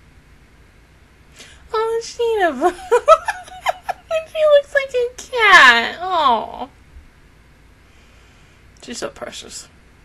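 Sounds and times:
faint background hum: 0.0s - 10.0s
person speaking: 1.4s - 6.7s.

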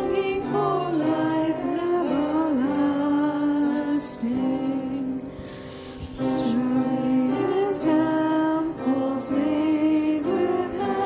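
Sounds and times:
women singing a hymn: 0.0s - 5.3s, 6.2s - 11.0s.

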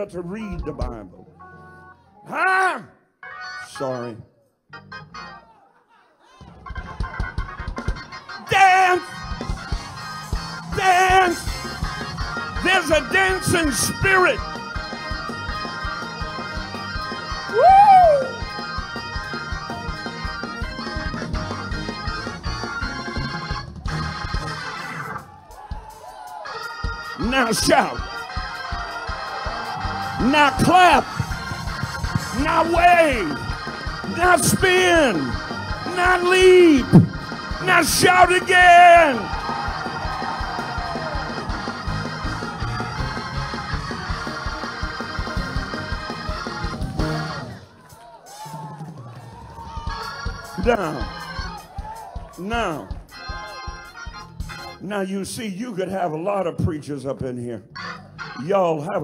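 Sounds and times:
sustained keyboard chords: 0.0s - 2.3s, 3.6s - 5.5s, 6.6s - 17.6s, 18.3s - 25.4s, 26.0s - 47.7s, 52.3s - 55.4s, 57.6s - 59.0s
steady beat: 6.8s - 24.6s, 25.5s - 47.3s, 49.8s - 54.7s
congregation shouting: 25.1s - 44.2s.

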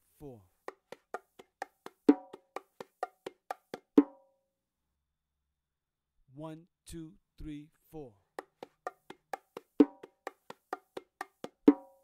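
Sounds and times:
bongos played with hands: 0.6s - 4.3s, 8.4s - 12.0s.

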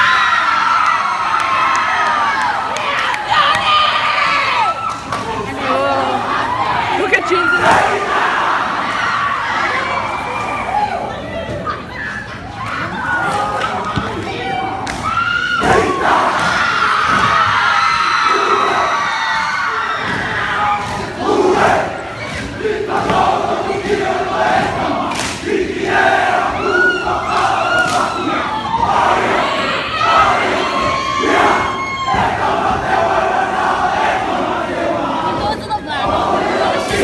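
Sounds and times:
crowd cheering: 0.0s - 37.0s.

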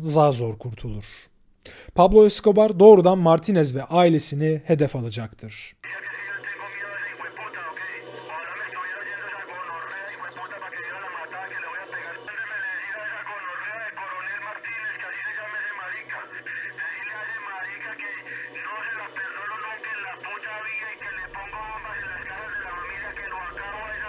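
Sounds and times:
man speaking on tape: 0.0s - 24.0s
low hum: 17.7s - 24.0s.

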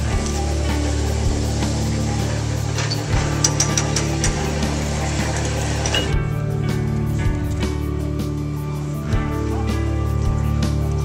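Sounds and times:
background music with low notes: 0.0s - 11.0s.

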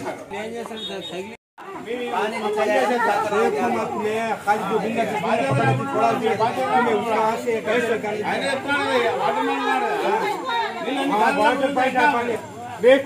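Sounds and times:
people talking at once: 0.0s - 13.0s.

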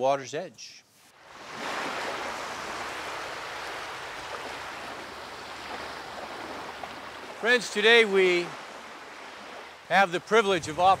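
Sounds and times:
lake waves: 1.1s - 11.0s
wind at the shore: 1.1s - 11.0s.

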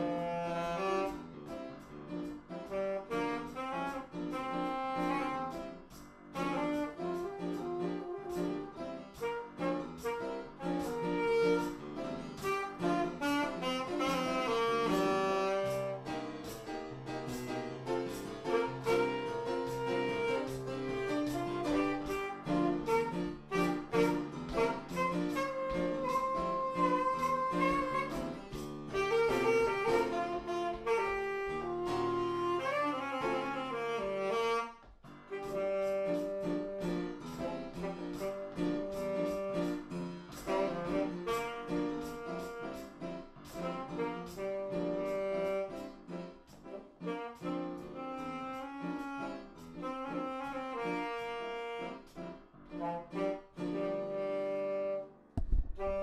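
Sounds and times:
saxophone blues melody: 0.0s - 56.0s
accompaniment with steady beat: 0.1s - 34.7s, 35.3s - 52.2s.

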